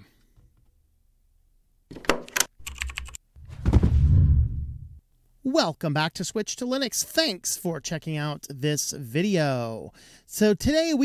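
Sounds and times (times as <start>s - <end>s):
keyboard typing clacks: 2.3s - 3.2s
deep thump: 3.4s - 5.0s.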